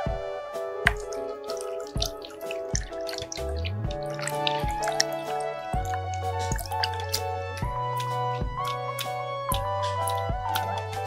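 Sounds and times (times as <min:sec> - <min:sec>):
background music with steady beat: 0:00.0 - 0:11.0
water pouring into plastic basin: 0:00.9 - 0:10.8.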